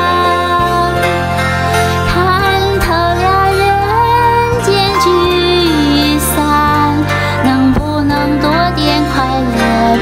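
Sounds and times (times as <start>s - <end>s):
backing track: 0.0s - 10.0s
woman singing pop ballad: 0.0s - 10.0s.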